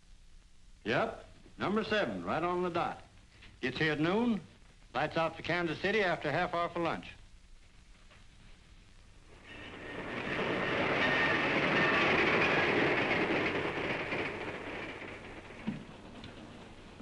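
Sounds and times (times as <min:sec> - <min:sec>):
passenger train passing: 0:09.2 - 0:17.0.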